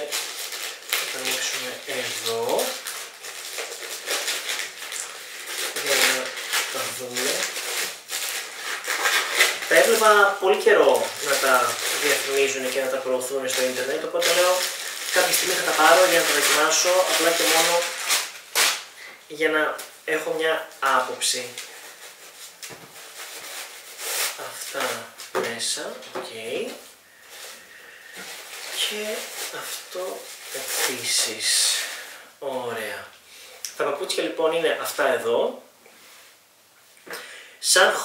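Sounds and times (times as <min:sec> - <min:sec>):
plastic mailer bag crinkling: 0:00.0 - 0:18.9, 0:20.8 - 0:31.5.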